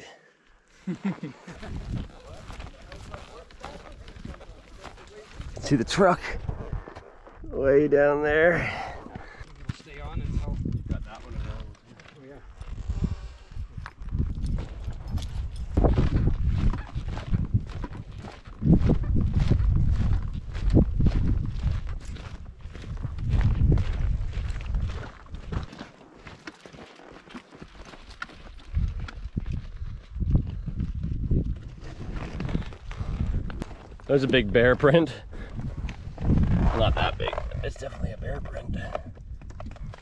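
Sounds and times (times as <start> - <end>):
footsteps on gravel: 1.4 - 7.4, 8.7 - 30.8
wind buffeting microphone: 1.5 - 7.7, 8.6 - 11.7, 12.5 - 25.7, 28.6 - 40.0.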